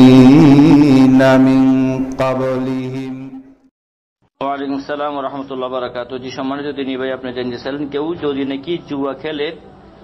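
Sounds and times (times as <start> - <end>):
man chanting melodically: 0.0 - 3.4.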